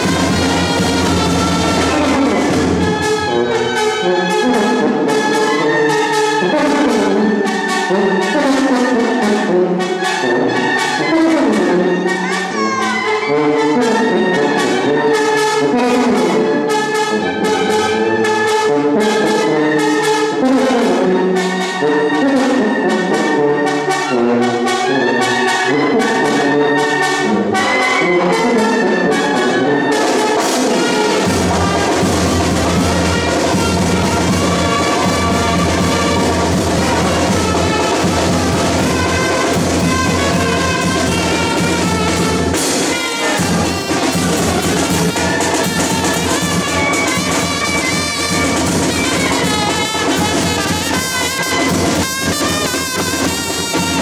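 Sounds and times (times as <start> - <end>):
band with brass and drums: 0.0 - 54.0.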